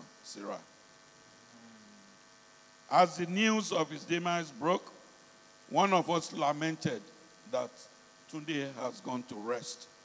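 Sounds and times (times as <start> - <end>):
electrical mains hum: 0.0 - 10.0
man speaking: 2.9 - 4.9.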